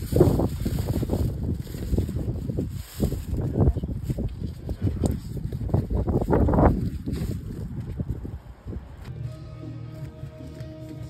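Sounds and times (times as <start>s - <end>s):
wind buffeting microphone: 0.0s - 9.1s
background music with held notes: 9.1s - 11.0s.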